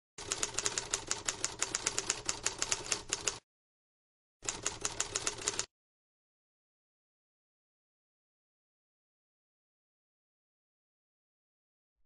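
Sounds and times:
typewriter keys clacking: 0:00.2 - 0:03.4, 0:04.5 - 0:05.7.

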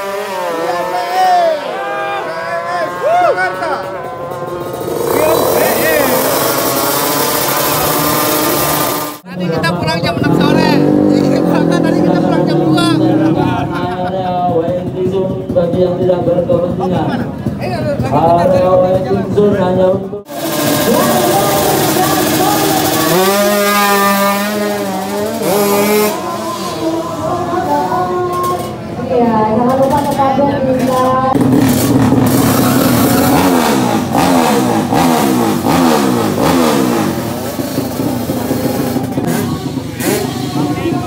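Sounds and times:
spectators calling out: 0:00.0 - 0:09.3, 0:20.3 - 0:29.1, 0:32.0 - 0:37.0, 0:38.4 - 0:41.0
motorcycle engine buzzing: 0:02.9 - 0:41.0.

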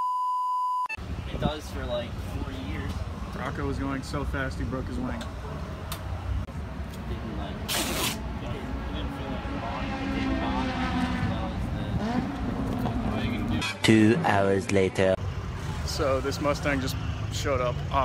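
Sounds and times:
car engine revving: 0:07.5 - 0:14.6
sharp rasping rip: 0:07.7 - 0:08.2.

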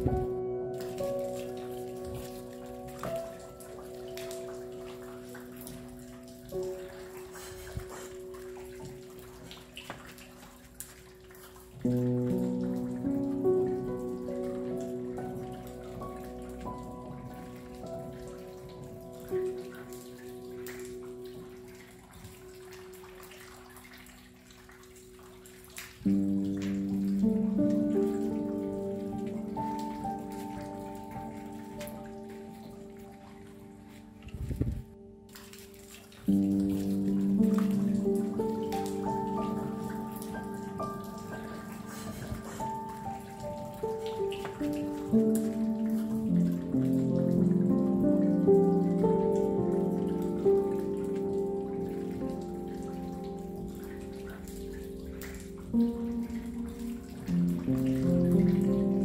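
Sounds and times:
rain pattering: 0:00.0 - 0:59.0
slow calm piano music: 0:00.0 - 0:59.0.

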